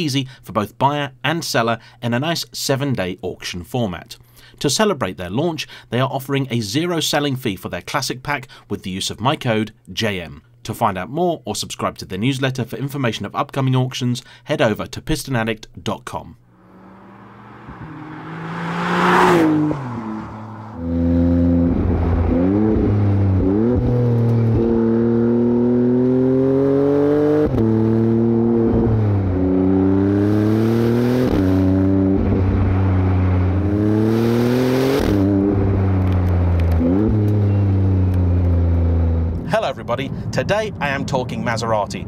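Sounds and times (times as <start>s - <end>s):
car engine accelerating through gears: 16.6s - 39.4s.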